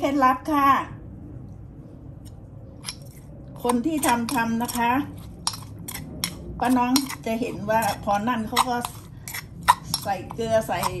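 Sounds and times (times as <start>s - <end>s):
low steady background hum: 0.0s - 11.0s
metal spoon clicking on stone mortar: 2.8s - 11.0s.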